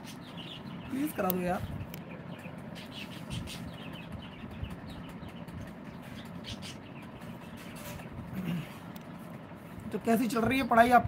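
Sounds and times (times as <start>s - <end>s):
small birds chirping: 0.0s - 11.0s
steady background noise: 0.0s - 11.0s.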